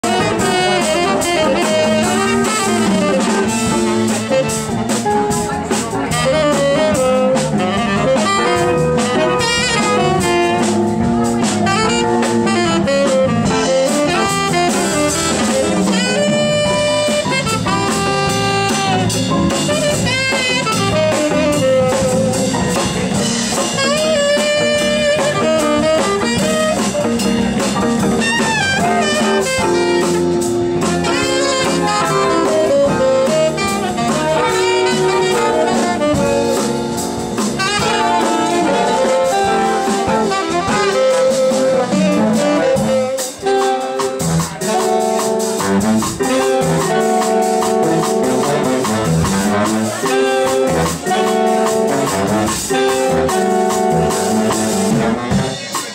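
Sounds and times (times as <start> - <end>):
jazz big band playing: 0.0 - 55.9
tenor saxophone solo: 0.0 - 55.9.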